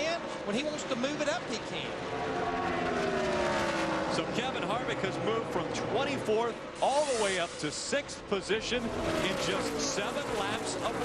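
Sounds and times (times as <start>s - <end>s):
race truck engines passing: 0.0s - 11.0s.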